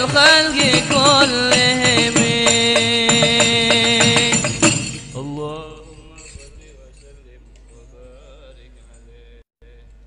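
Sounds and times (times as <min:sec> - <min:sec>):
man chanting into microphone: 0:00.0 - 0:10.0.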